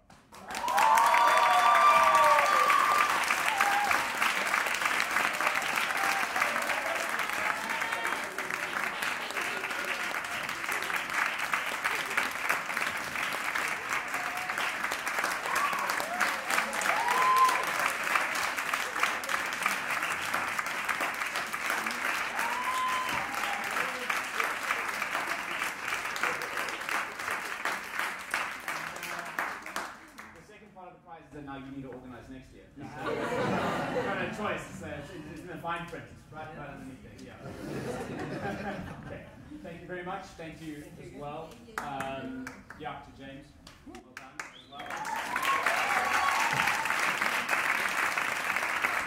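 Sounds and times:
audience applauding: 0.2 - 30.4, 44.1 - 49.0
people cheering: 0.4 - 29.9, 44.7 - 49.0.

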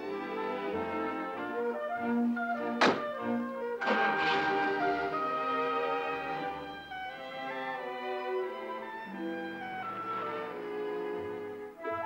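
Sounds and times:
orchestral music: 0.0 - 12.0
car door slamming: 2.8 - 3.2.

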